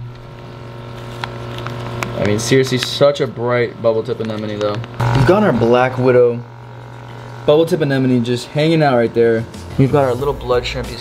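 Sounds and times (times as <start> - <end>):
low electrical hum: 0.0 - 11.0
steady tones: 4.8 - 11.0.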